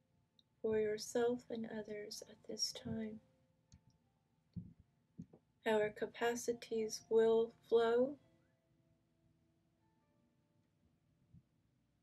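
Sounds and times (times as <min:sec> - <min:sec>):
woman speaking: 0:00.6 - 0:03.2, 0:05.7 - 0:08.2.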